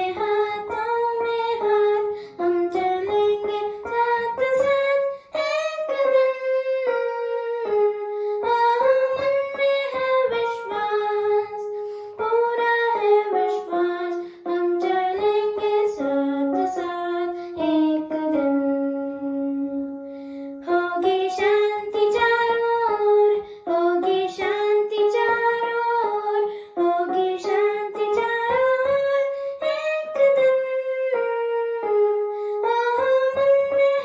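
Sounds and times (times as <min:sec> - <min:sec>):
boy singing: 0:00.0 - 0:07.4, 0:08.4 - 0:18.6, 0:20.6 - 0:31.2, 0:32.6 - 0:34.0
electronic keyboard: 0:00.0 - 0:34.0.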